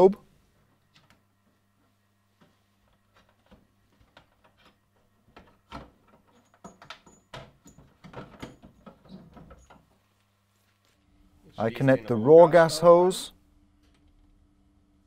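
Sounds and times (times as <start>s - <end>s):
faint clicks and knocks: 0.7s - 11.0s.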